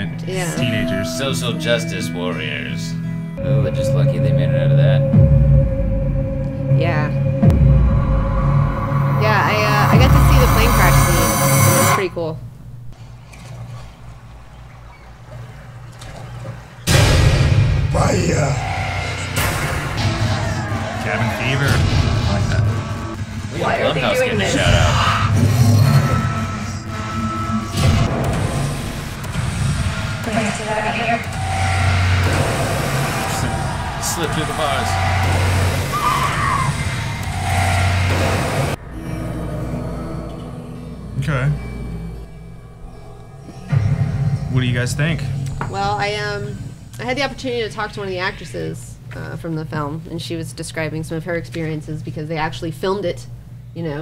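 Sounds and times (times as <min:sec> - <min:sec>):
low ominous drone: 0:00.0 - 0:51.2
low steady rumble: 0:03.4 - 0:13.0
sudden loud hit: 0:07.1 - 0:12.0, 0:16.9 - 0:23.5.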